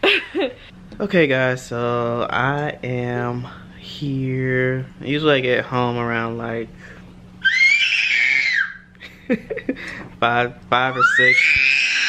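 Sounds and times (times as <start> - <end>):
toddler screaming: 7.4 - 8.9, 10.9 - 12.0.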